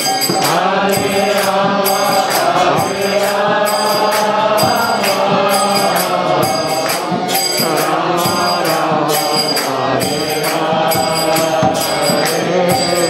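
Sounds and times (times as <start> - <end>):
group chanting: 0.0 - 13.0
hand drum: 0.0 - 13.0
harmonium: 0.0 - 13.0
steady high beat: 0.0 - 13.0.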